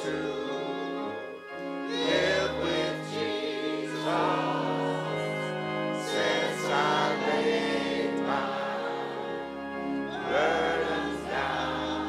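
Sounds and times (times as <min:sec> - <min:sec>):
choir singing a hymn: 0:00.0 - 0:12.0
organ chords: 0:00.0 - 0:12.0.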